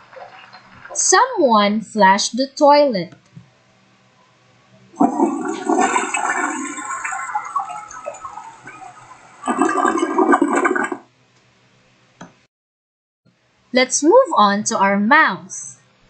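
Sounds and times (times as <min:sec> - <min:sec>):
toilet flushing: 0:05.0 - 0:11.1.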